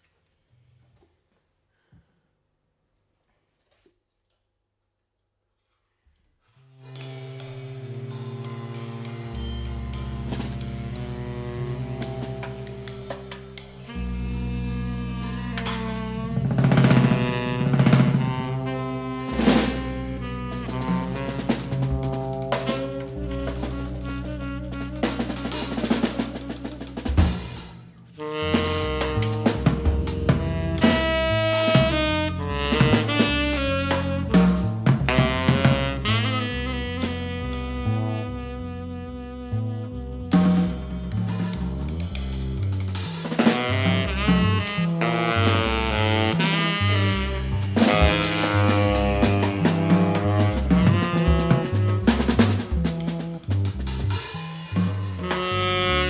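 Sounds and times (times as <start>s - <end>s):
free jazz drum kit: 6.6s - 56.0s
electric bass low notes: 6.9s - 56.0s.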